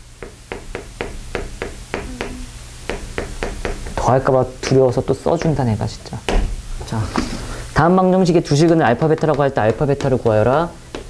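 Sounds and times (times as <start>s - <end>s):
chalk tapping on chalkboard: 0.2s - 5.7s, 8.6s - 11.0s.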